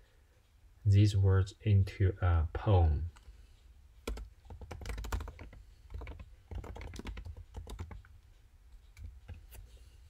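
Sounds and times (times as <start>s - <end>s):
computer keyboard typing: 4.0s - 8.2s, 8.9s - 9.6s.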